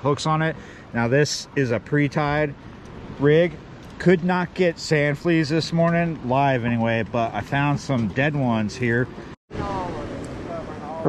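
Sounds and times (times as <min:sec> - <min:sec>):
man speaking: 0:00.0 - 0:02.6, 0:03.2 - 0:11.0
outdoor background hiss: 0:00.0 - 0:11.0.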